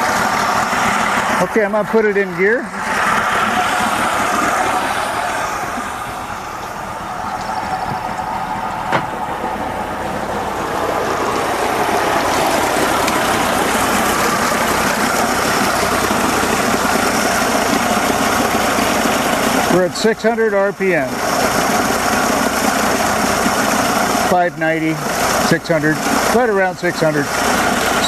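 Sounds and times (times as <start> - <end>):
outboard motor idling: 0.0 - 28.0.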